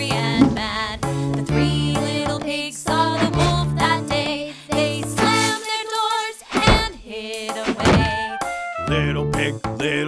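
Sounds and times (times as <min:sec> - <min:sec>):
children's song instrumental music: 0:00.0 - 0:10.0
thuds: 0:00.2 - 0:00.8, 0:06.6 - 0:07.0, 0:07.7 - 0:08.3.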